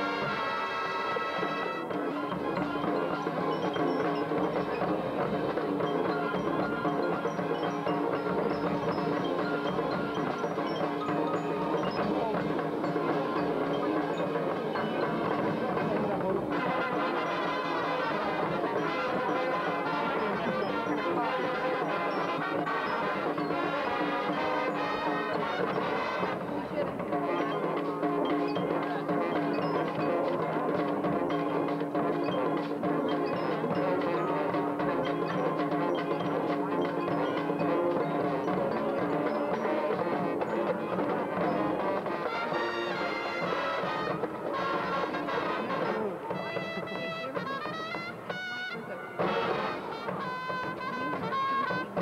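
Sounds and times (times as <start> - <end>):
marching band playing: 0.0 - 52.0.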